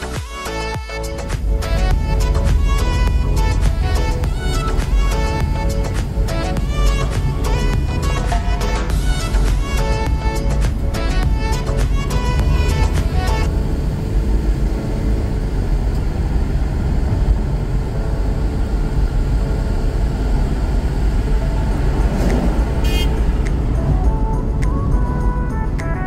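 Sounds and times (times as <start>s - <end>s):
background music: 0.0s - 26.0s
car road and engine rumble: 0.0s - 26.0s.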